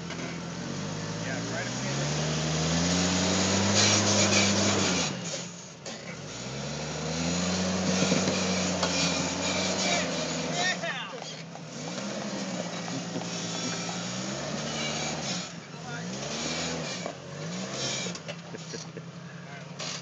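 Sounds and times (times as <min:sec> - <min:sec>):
car engine revving under load: 0:00.0 - 0:20.0.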